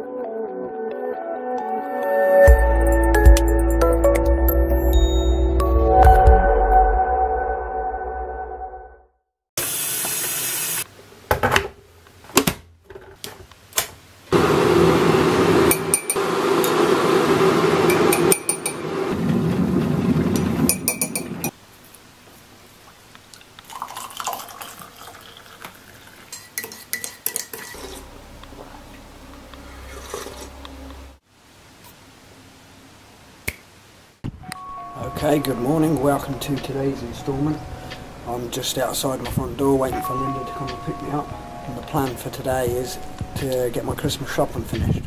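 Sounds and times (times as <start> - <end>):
outdoor noise: 9.6 - 23.8, 25.5 - 34.7
metal spoon clinking on mug: 15.7 - 16.2, 18.0 - 18.8, 20.7 - 21.5, 26.3 - 27.8
finger snap: 33.4 - 33.7.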